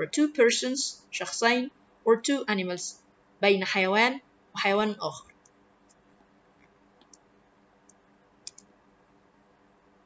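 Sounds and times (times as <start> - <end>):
computer mouse click: 6.6 - 8.7.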